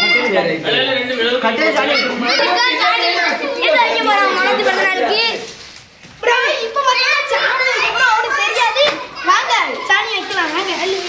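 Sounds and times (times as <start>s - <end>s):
children talking and shouting: 0.0s - 11.0s.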